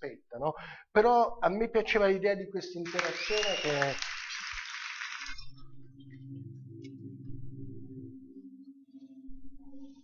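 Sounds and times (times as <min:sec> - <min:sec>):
low ambient music drone: 0:05.3 - 0:10.0.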